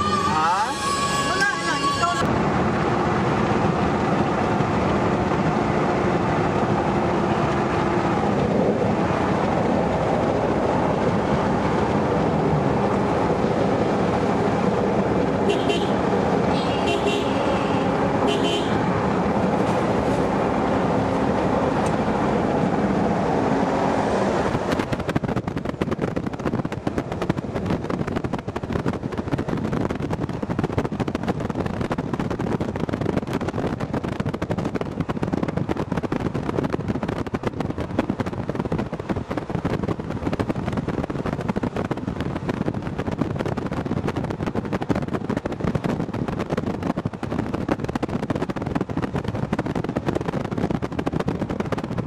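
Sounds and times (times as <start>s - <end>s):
short horn toots: 0.0s - 2.3s, 15.5s - 18.8s
road and engine noise in car: 0.0s - 52.0s
wind buffeting microphone: 1.8s - 52.0s.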